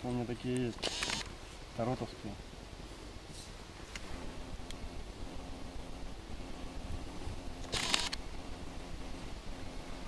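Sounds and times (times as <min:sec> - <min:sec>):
wind rumble on microphone: 0:04.0 - 0:10.0.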